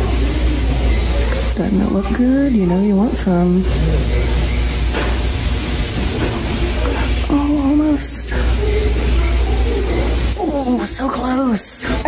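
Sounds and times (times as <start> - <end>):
constant high hiss: 0.0 - 12.0
mechanical rumble: 0.0 - 12.0.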